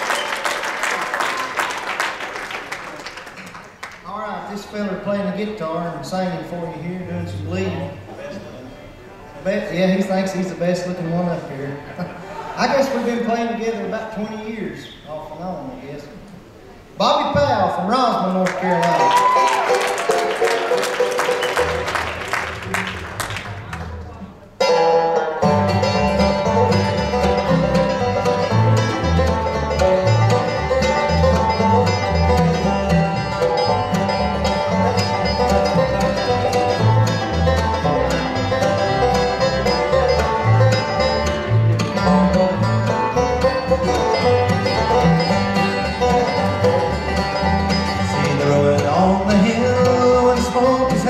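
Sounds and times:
audience applause: 0.0s - 4.2s, 18.4s - 24.2s
mandolin: 19.0s - 51.0s
acoustic guitar: 19.2s - 51.0s
banjo: 19.3s - 51.0s
fiddle: 24.6s - 51.0s.

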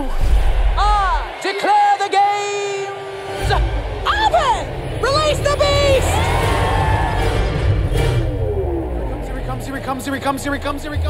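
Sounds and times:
dramatic music with heavy bass: 3.0s - 11.0s.

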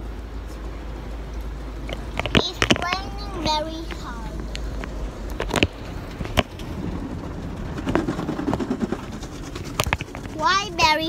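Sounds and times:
heavy rain on car roof: 0.0s - 11.0s.

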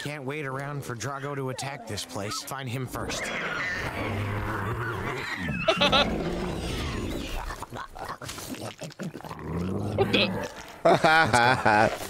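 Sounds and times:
dragon calls: 1.0s - 7.4s
person laughing: 5.7s - 6.2s, 7.3s - 8.4s, 10.8s - 12.0s.

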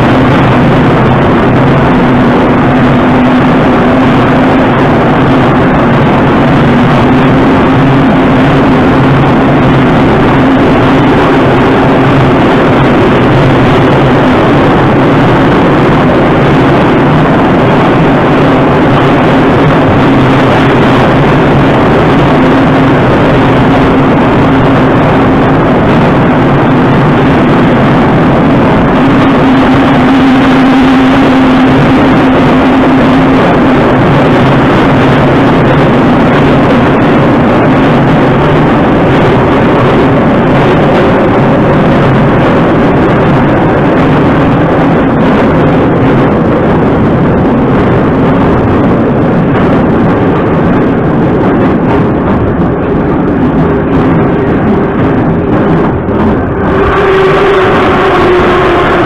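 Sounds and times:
constant hum: 0.0s - 59.0s
train wheels rumbling on rails: 0.0s - 59.0s.

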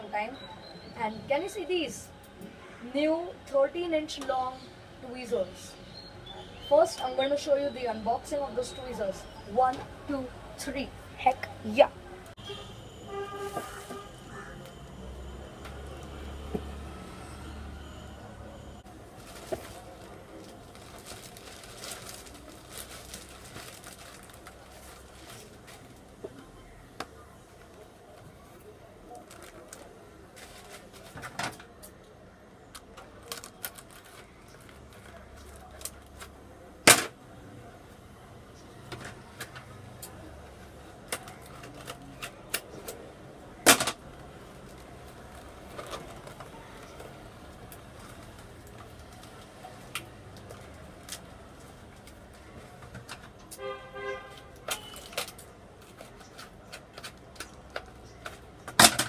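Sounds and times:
plastic mailer bag rustling: 19.0s - 26.2s, 29.1s - 31.3s, 44.7s - 49.5s.

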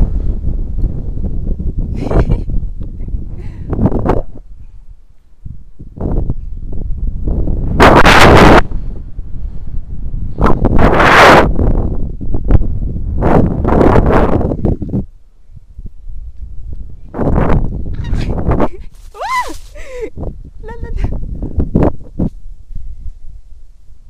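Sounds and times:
wind rushing over microphone: 0.0s - 24.0s.

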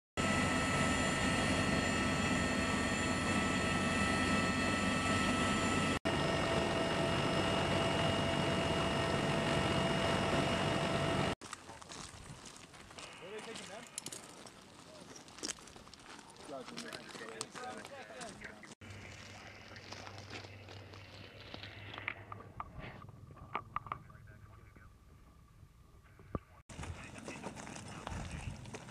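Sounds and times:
aircraft cabin engine drone: 0.2s - 11.4s
high steady whines: 0.2s - 11.4s
boots on rocky ground: 11.4s - 22.3s, 26.7s - 28.9s
men's voices calling: 16.4s - 20.7s.

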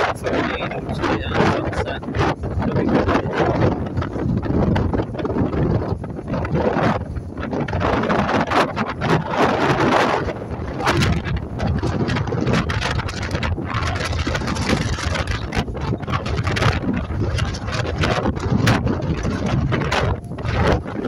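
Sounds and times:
boat engines droning: 0.0s - 5.4s
rushing water: 0.0s - 21.0s
wind buffeting microphone: 0.0s - 21.0s.

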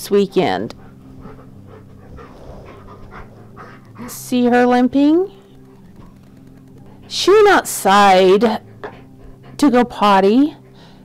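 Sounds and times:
dog panting: 0.2s - 4.8s, 5.5s - 11.0s.

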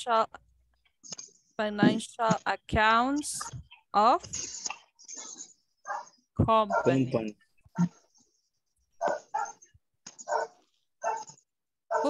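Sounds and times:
dog barking: 5.9s - 7.1s, 9.0s - 9.6s, 10.3s - 12.0s.

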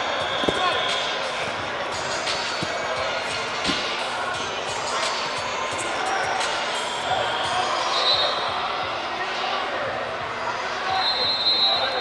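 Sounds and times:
distant voices and shouts: 0.0s - 12.0s
bodies thudding on mats: 0.4s - 0.8s, 2.5s - 3.0s, 3.6s - 4.0s.

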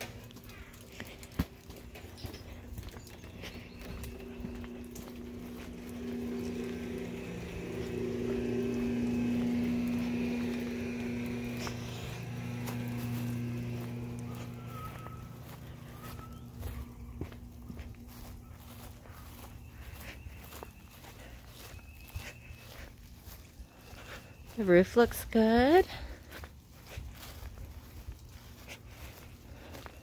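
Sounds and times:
light footsteps: 0.0s - 30.0s
pump motor humming: 0.0s - 30.0s.

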